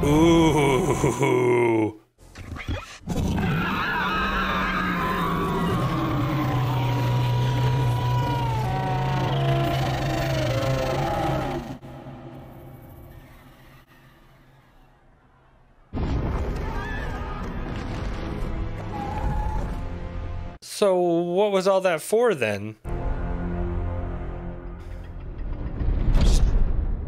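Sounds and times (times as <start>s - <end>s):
dragon screaming roar: 3.2s - 11.8s.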